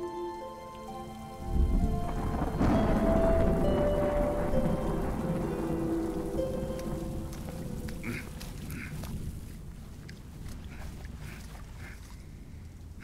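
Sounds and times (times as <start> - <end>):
held music notes: 0.0 - 9.7
frogs croaking: 0.0 - 13.0
low rumble: 1.3 - 11.4.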